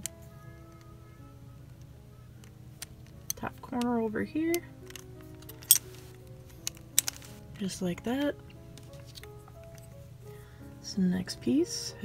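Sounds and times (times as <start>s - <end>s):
soft background music: 0.0s - 12.0s
plastic puzzle pieces clicking: 4.5s - 7.4s.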